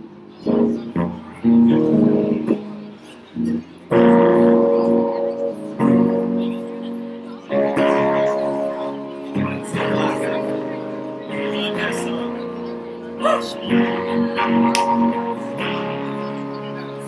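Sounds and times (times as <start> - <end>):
electric guitar strumming chords: 0.0 - 17.0.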